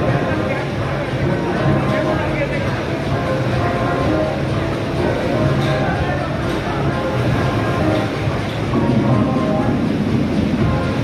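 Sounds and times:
bumper cars rolling rumble: 0:00.0 - 0:11.0.

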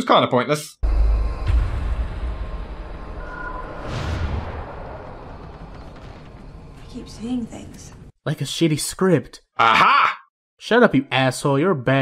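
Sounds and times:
whoosh: 0:00.8 - 0:07.2
deep low rumble: 0:00.8 - 0:08.1.

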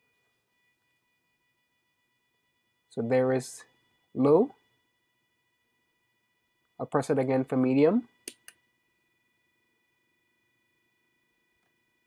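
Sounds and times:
faint steady hum: 0:00.0 - 0:12.0
push-button switch clicks: 0:08.3 - 0:08.6.

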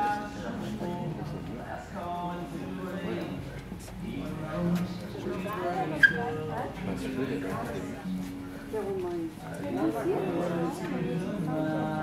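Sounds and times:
background voices talking: 0:00.0 - 0:12.0.

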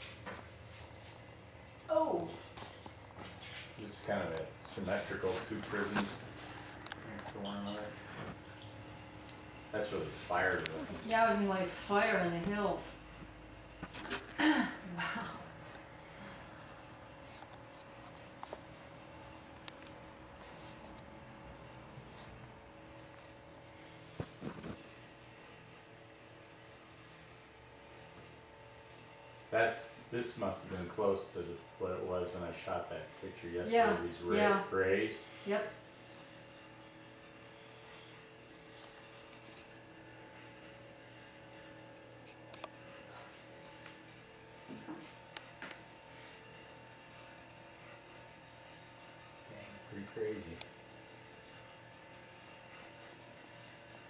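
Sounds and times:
faint hum and hiss: 0:00.0 - 0:54.0.

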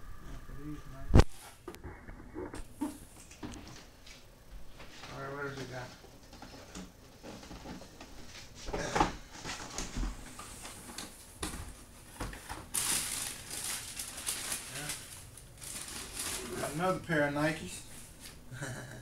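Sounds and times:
tissue paper crinkling: 0:12.6 - 0:16.9.

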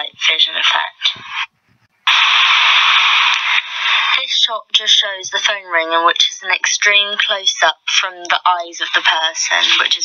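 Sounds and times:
loud static hiss: 0:00.0 - 0:04.6.

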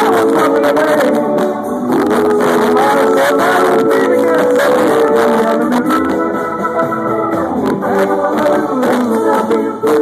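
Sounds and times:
drums: 0:00.0 - 0:10.0
electric guitars: 0:00.0 - 0:10.0
rock band playing: 0:00.0 - 0:10.0.

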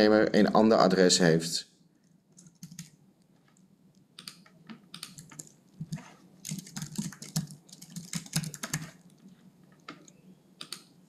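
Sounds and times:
keyboard typing: 0:02.0 - 0:03.6, 0:04.2 - 0:10.9.

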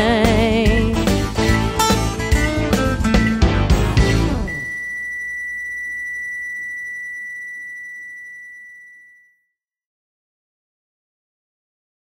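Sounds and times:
high synthesizer tone: 0:03.1 - 0:08.0.

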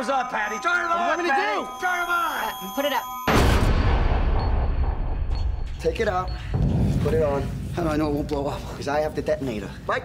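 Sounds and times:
trailer score music: 0:00.0 - 0:07.3
loud cinematic boom: 0:03.3 - 0:05.8.

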